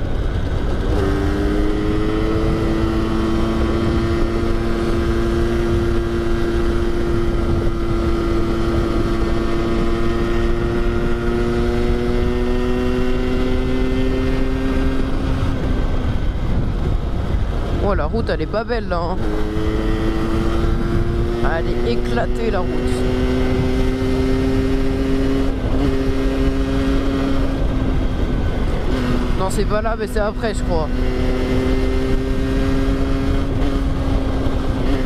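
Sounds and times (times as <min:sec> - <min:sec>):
motorcycle engine cruising: 0:00.0 - 0:35.0
wind buffeting microphone: 0:00.0 - 0:35.0.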